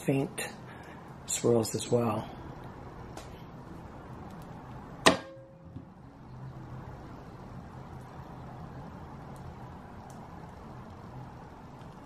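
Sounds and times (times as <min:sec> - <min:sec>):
low room hum: 0:00.0 - 0:12.0
sharp knock with ring: 0:05.0 - 0:05.6.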